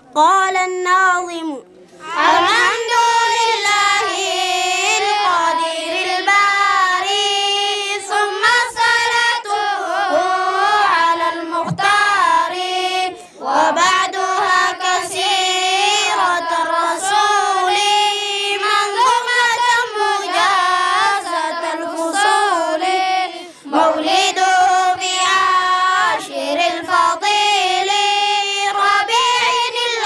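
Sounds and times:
boys chanting together: 0:02.0 - 0:30.0.

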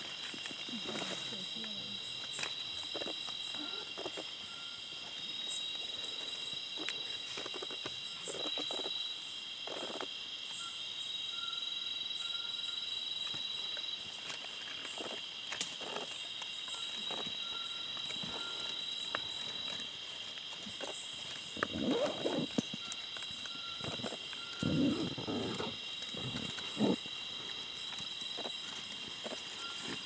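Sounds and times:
crickets droning: 0:00.0 - 0:30.0
rapid insect chirping: 0:00.0 - 0:30.0.

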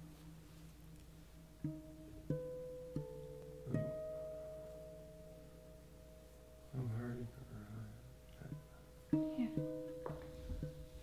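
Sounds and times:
plucked guitar notes ringing: 0:00.9 - 0:11.0.

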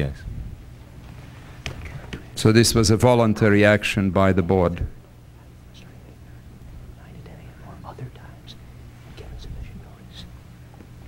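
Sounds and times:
low electrical hum: 0:00.0 - 0:11.0
man whispering: 0:05.3 - 0:10.5.

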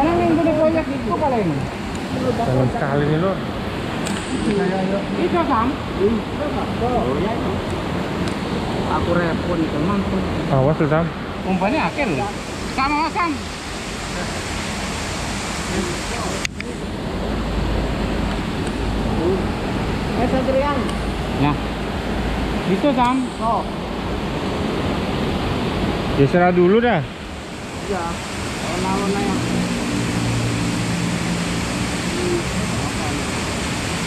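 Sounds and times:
fast-flowing water rushing: 0:00.0 - 0:34.0
road traffic noise: 0:00.0 - 0:34.0
sharp click: 0:04.0 - 0:04.4.

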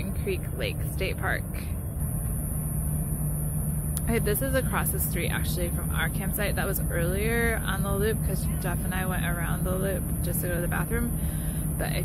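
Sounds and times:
power plant hum and rumble: 0:00.0 - 0:12.0.

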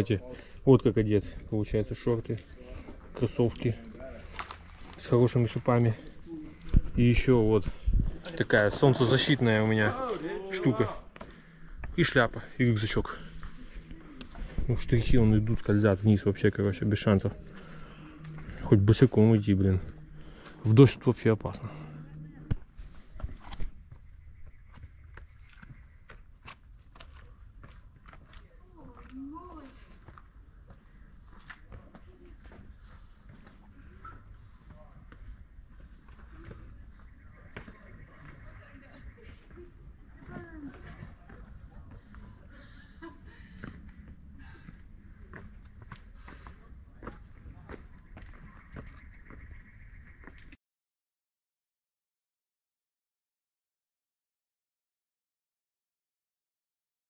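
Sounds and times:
faint voices: 0:28.2 - 0:49.3.

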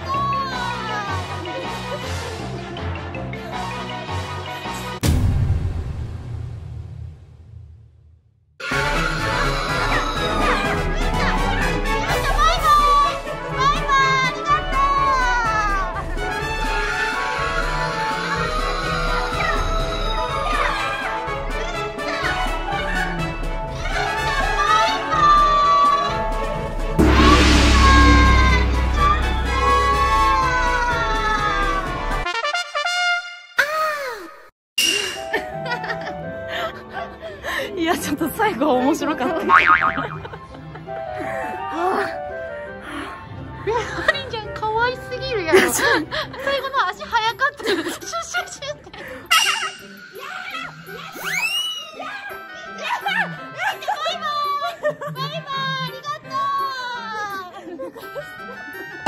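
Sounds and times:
background music: 0:00.0 - 0:05.9, 0:08.6 - 0:33.2, 0:34.8 - 0:59.0
woman's voice: 0:37.7 - 0:39.5
comic boing sound effect: 0:39.5 - 0:40.3
shrill shrieks and cries: 0:49.3 - 0:52.4.

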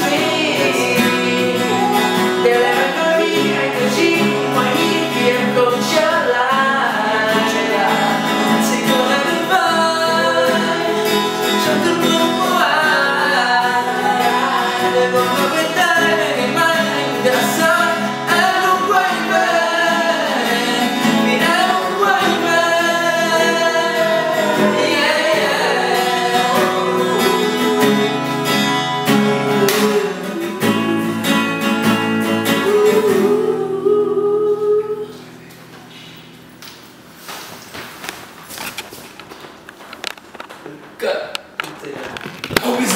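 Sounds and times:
men singing: 0:00.0 - 0:35.2, 0:42.6 - 0:42.9
acoustic guitar: 0:00.0 - 0:42.9.

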